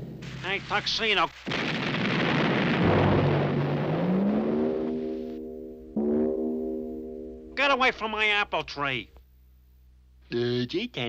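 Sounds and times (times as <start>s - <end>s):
cartoon cannon blast rumble: 1.5s - 7.6s
low musical slide: 2.8s - 7.8s
held orchestral chords: 2.8s - 8.4s.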